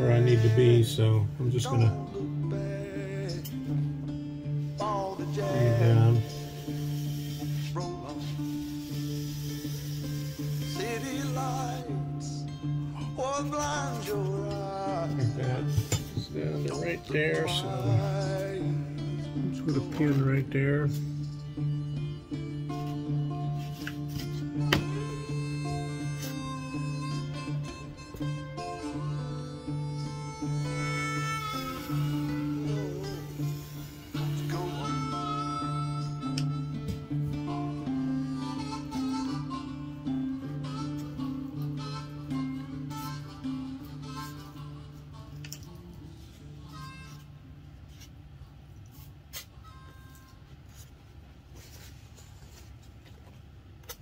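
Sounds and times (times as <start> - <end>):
harmonica playing held notes: 0.0 - 48.1, 48.9 - 51.0
guitar: 0.0 - 54.0.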